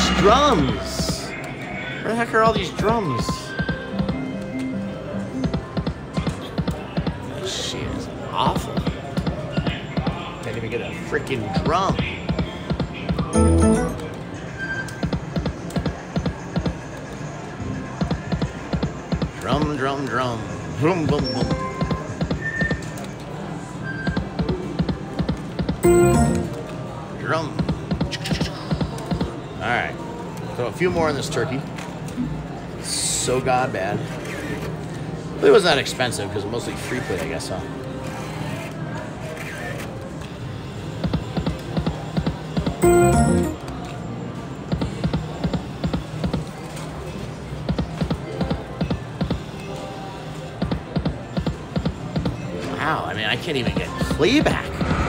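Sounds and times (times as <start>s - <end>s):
slot machine game music: 13.3s - 14.3s, 25.8s - 26.8s, 42.8s - 43.7s.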